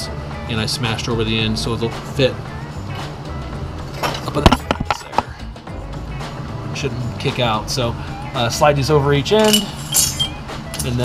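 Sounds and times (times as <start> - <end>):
background music: 0.0 - 11.0
metallic clinks and knocks: 4.0 - 5.3, 9.4 - 11.0.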